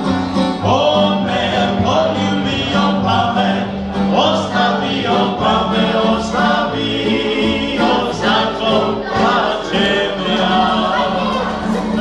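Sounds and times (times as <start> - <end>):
plucked strings and bass: 0.0 - 12.0
men singing together: 0.6 - 12.0.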